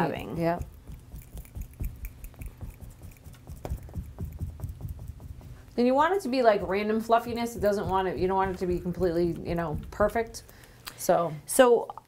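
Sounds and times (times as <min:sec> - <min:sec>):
paintbrush dabbing on canvas: 0:00.0 - 0:10.6.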